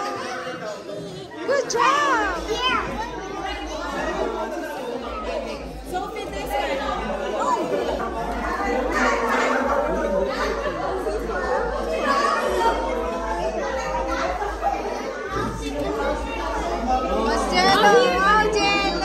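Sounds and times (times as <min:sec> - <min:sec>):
children and adults chattering: 0:00.0 - 0:19.0.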